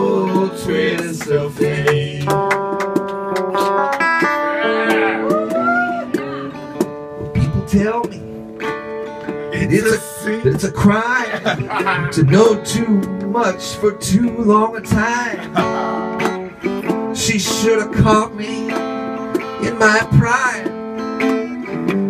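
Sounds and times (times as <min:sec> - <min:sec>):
man singing: 0:00.0 - 0:02.5, 0:07.2 - 0:08.2, 0:09.5 - 0:18.8, 0:19.5 - 0:21.8
picked guitar chords: 0:00.0 - 0:22.0.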